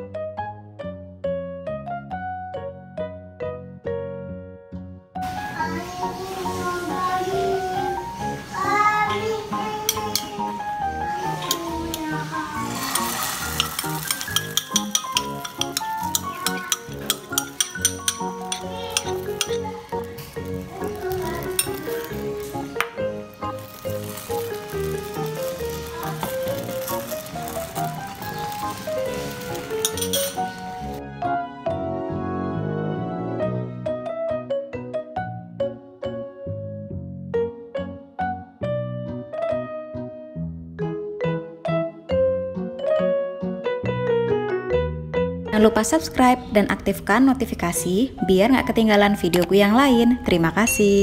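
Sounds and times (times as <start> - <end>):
background music: 0.0 - 51.0
batter sizzling in a frying pan: 5.4 - 31.0.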